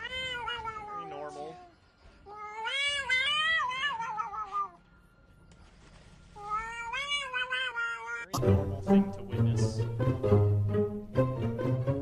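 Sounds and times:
cat yowling: 0.0s - 1.7s, 2.3s - 4.8s, 6.4s - 8.3s.

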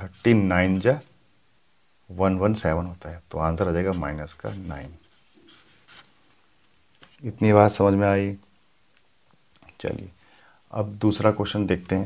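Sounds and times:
marker pen writing on paper: 3.8s - 6.2s.

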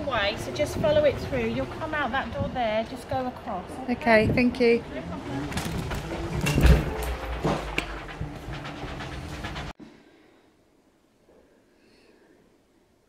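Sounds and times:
mobility scooter rumbling on wood: 0.0s - 9.8s.

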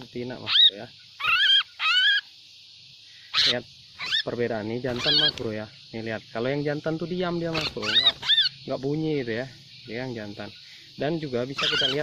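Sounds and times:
bird harsh call: 0.0s - 2.4s, 3.0s - 5.8s, 7.4s - 8.8s, 9.5s - 12.0s.

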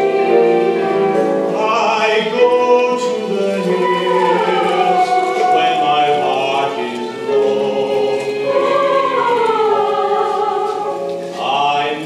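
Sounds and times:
young voices singing together: 0.0s - 12.0s.

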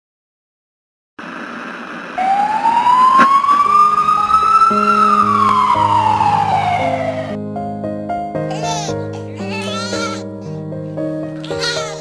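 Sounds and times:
noisy hiss: 1.2s - 4.1s
siren wail: 1.2s - 7.4s.

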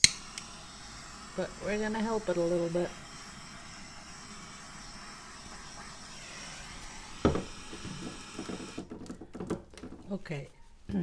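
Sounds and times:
butane torch hissing: 0.0s - 10.8s
sharp knock: 7.2s - 10.1s
light handling knocks: 7.3s - 10.6s.

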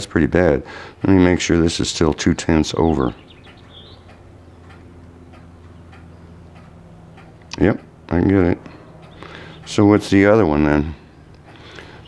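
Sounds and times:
steady low hum: 0.0s - 12.0s
faint light ticks: 3.4s - 7.9s.

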